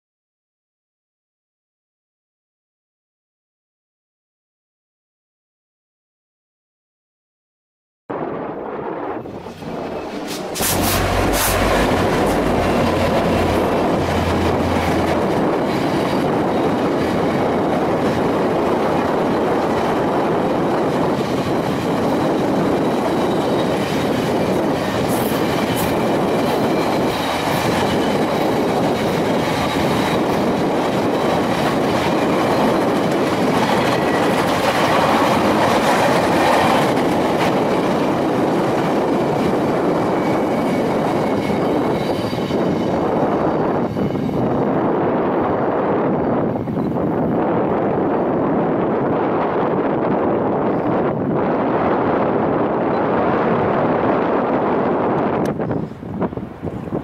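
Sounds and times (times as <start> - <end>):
train wheels rumbling on rail: 8.1 - 57.0
locomotive engine drone: 9.4 - 20.8.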